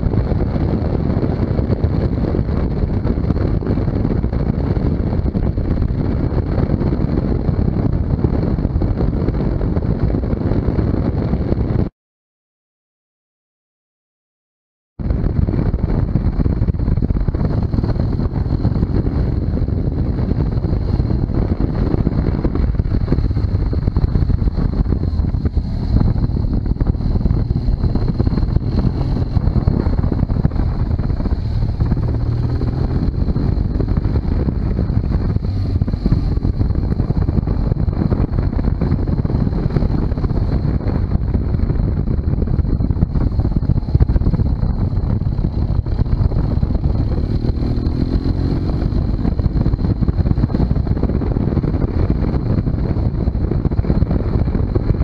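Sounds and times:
wind rumble on microphone: 0.0 - 11.9, 15.0 - 55.0
steady high whine: 15.0 - 54.8
motorcycle engine running: 15.0 - 55.0.

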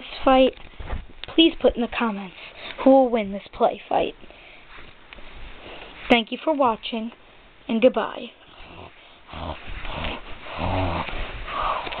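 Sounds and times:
dog-like growl: 8.6 - 12.0
rustling: 8.6 - 12.0.

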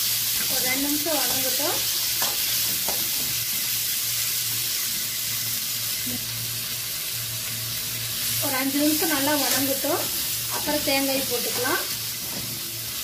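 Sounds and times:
vegetables sizzling in hot oil: 0.0 - 13.0.

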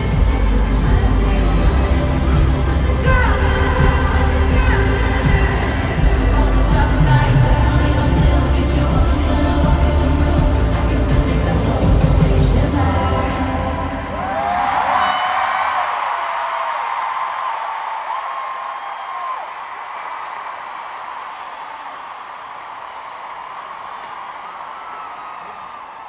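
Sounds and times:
stadium crowd cheering and applauding: 0.0 - 26.0.

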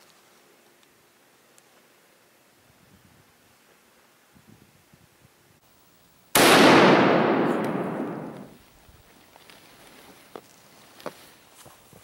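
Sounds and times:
rifle shot echoing: 6.4 - 8.6.

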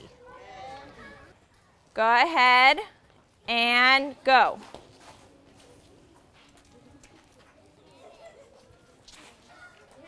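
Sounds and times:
distant children's voices: 0.0 - 1.9, 5.2 - 10.0
outdoor ambience: 0.0 - 10.0.

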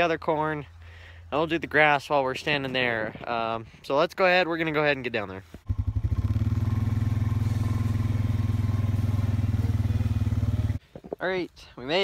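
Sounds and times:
small motor vehicle engine: 5.7 - 10.8.

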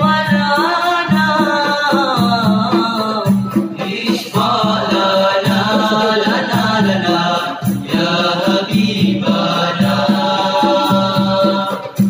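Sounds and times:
boys singing in harmony: 0.0 - 12.0.

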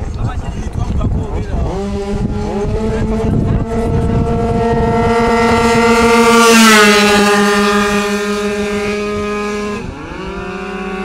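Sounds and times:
two-stroke scooter engines racing: 0.0 - 11.0.

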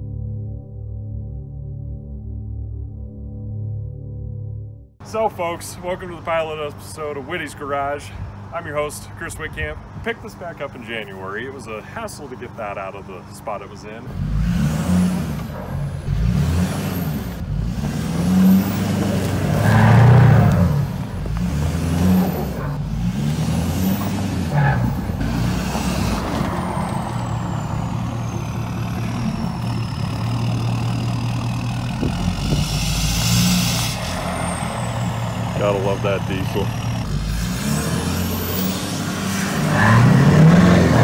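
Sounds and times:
diesel engine revving under load: 12.4 - 41.0
high whistle rising and falling: 32.4 - 35.7.

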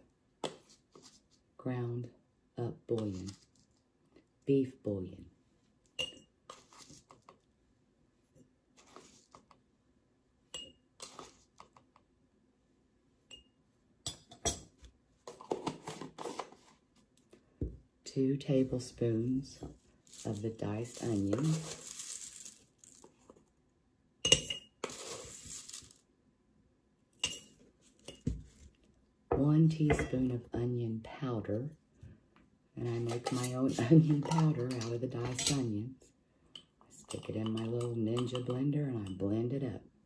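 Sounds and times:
metal spoon clinking glass jar: 6.0 - 6.3, 10.6 - 10.8, 24.2 - 25.0, 27.2 - 28.2
dried onion flakes rustling: 19.9 - 23.3, 24.8 - 26.0
spoon scraping in jar: 20.1 - 23.1, 24.3 - 26.0.

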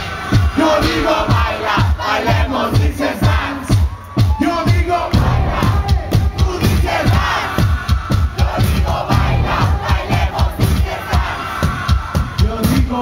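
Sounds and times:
crowd shouting along: 0.0 - 12.4
electronic dance music: 0.0 - 13.0.

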